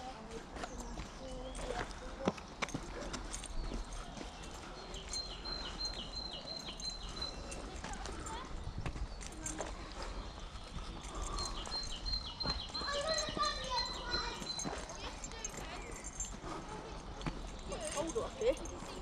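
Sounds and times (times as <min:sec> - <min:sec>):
distant voices: 0:00.0 - 0:19.0
footsteps on dirt path: 0:00.0 - 0:19.0.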